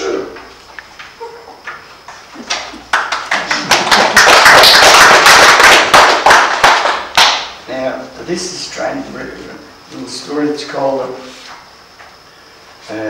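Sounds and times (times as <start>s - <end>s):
audience applauding: 2.4s - 7.5s.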